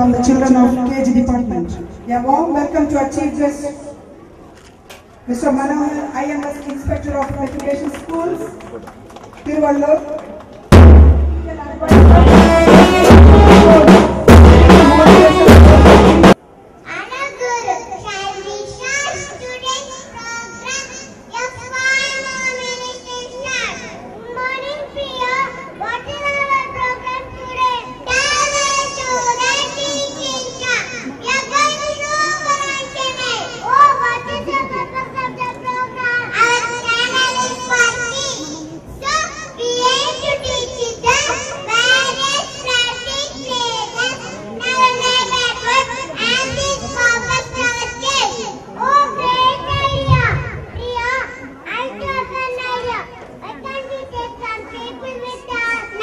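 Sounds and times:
child speaking into a microphone: 5.2s - 8.8s, 11.3s - 15.9s, 16.8s - 56.0s.

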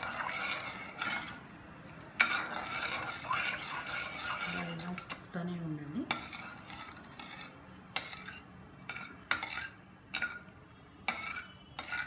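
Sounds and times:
metal ladle scraping a pan: 0.0s - 5.2s, 6.0s - 12.0s
soft rubbing: 2.2s - 5.0s.

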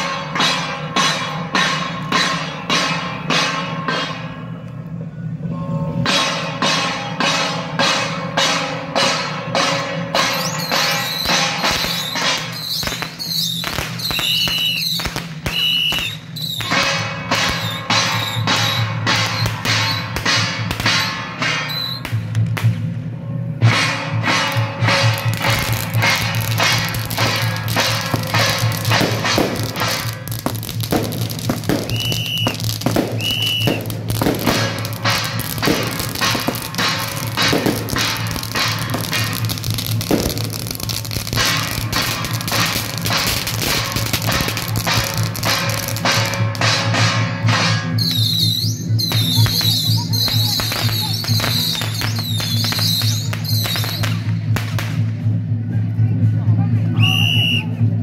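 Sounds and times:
firecrackers crackling: 6.0s - 23.0s, 23.6s - 58.0s.

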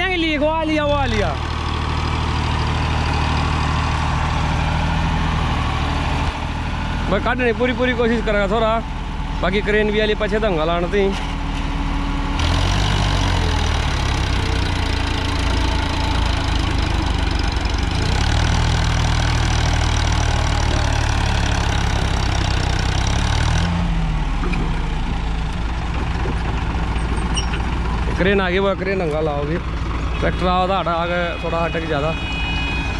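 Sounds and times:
tractor diesel engine working hard: 0.0s - 32.9s.

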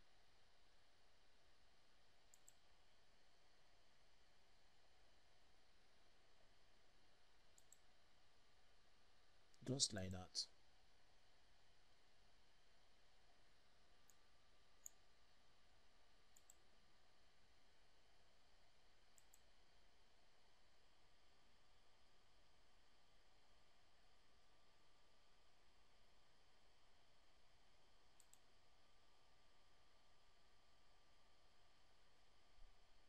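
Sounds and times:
computer mouse clicks: 2.3s - 2.6s, 7.5s - 7.8s, 14.0s - 14.2s, 14.8s - 15.0s, 16.3s - 16.6s, 19.1s - 19.5s, 28.2s - 28.5s.

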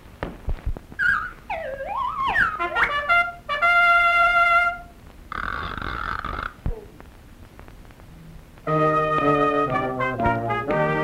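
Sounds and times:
wavering whistle-like tone: 1.0s - 2.9s.

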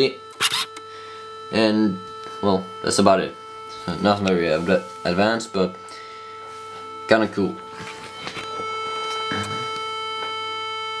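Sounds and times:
radio playing steady electronic tone: 0.0s - 11.0s.

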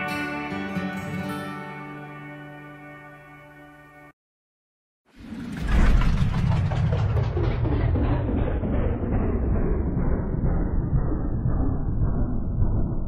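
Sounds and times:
deep steady rumbling: 5.2s - 13.0s.

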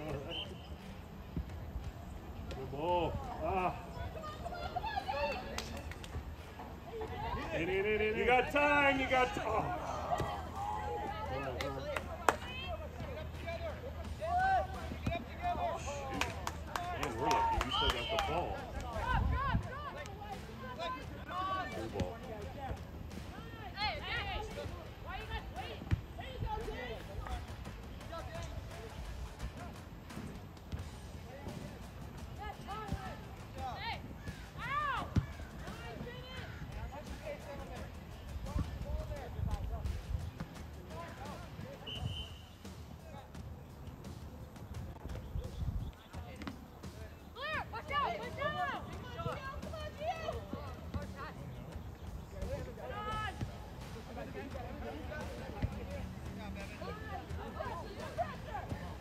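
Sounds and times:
people calling and shouting: 0.0s - 59.0s.

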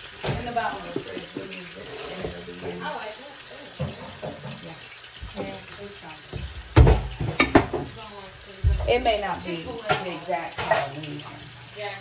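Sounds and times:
meat sizzling in a skillet: 0.0s - 12.0s.

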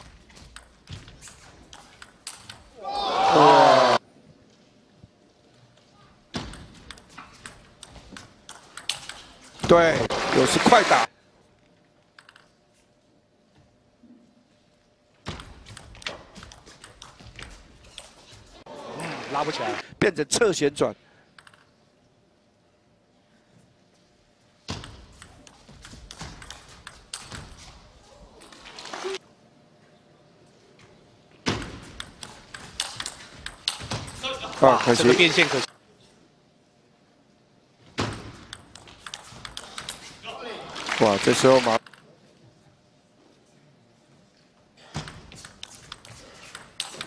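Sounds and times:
people shouting: 2.8s - 4.0s.

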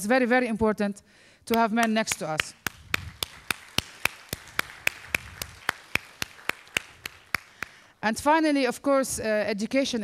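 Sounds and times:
person clapping in a hall: 1.5s - 8.0s.

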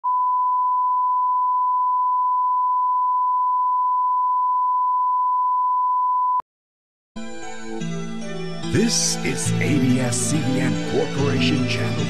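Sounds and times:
steady test tone beep: 0.0s - 6.4s.

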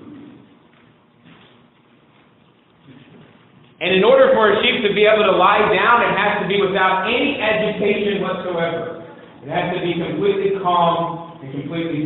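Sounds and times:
man speaking: 3.8s - 12.0s.

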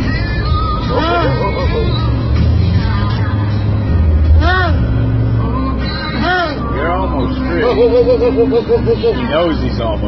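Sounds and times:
low engine rumble: 0.0s - 10.0s
seal crying: 0.8s - 2.1s, 4.4s - 4.9s.

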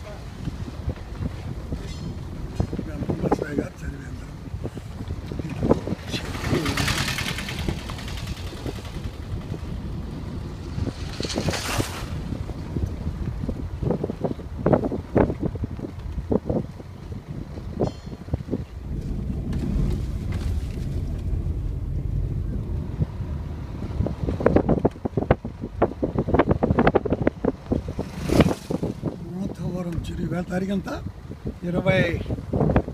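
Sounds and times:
car rumbling on dirt road: 0.0s - 32.9s
wind buffeting microphone: 0.0s - 32.9s
short bumps: 15.2s - 26.0s.

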